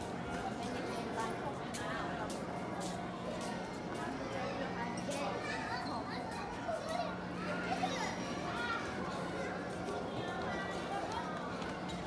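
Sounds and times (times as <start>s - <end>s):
children calling and talking: 0.0s - 12.0s
crowd chatter: 0.0s - 12.0s.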